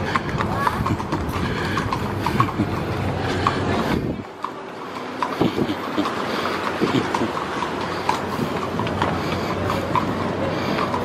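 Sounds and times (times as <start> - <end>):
horse hooves clip-clopping on pavement: 0.0 - 11.0
people talking: 0.0 - 11.0.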